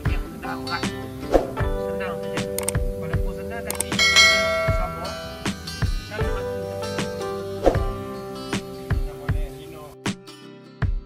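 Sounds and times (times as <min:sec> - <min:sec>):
background music: 0:00.0 - 0:11.0
ringing bell chime: 0:03.8 - 0:05.9.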